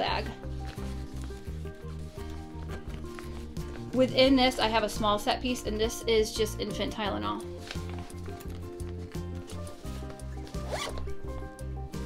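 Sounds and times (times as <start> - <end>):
background music with steady beat: 0.0 - 12.0
zipper pulled quickly: 9.6 - 11.2.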